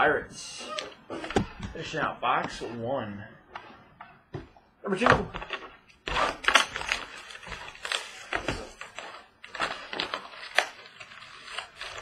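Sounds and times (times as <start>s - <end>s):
packaging crackling and tearing: 5.4s - 12.0s.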